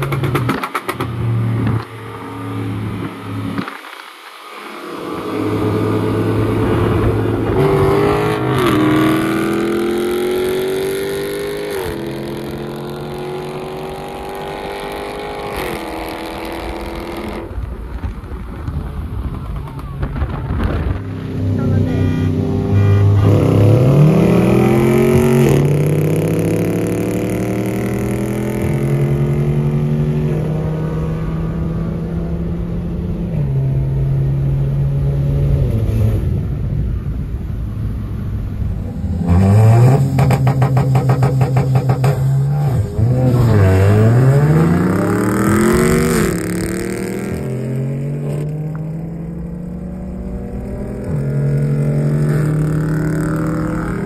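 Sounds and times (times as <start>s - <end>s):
car engines pulling hard: 0.0s - 54.0s.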